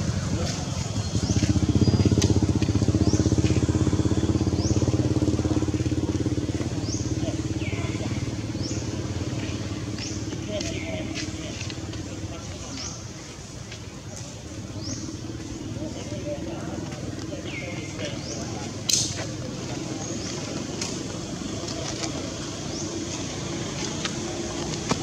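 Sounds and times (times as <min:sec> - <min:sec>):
engine running: 0:00.0 - 0:25.0.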